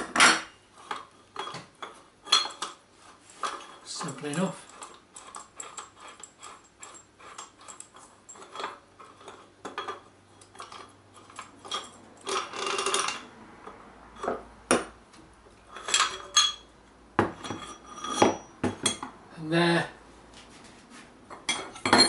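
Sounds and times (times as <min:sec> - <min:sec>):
metal tools clinking on workbench: 0:00.1 - 0:13.3, 0:15.7 - 0:16.7, 0:21.3 - 0:22.0
scraping rattle: 0:02.3 - 0:13.3.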